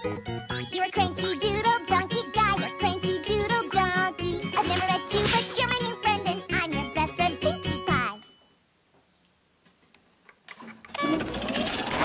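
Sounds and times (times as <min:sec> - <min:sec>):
background music: 0:00.0 - 0:08.4.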